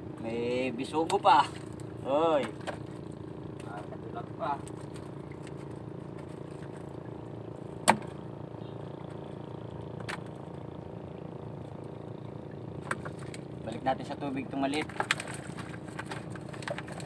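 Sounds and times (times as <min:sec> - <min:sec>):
small boat engine idling: 0:00.0 - 0:17.0.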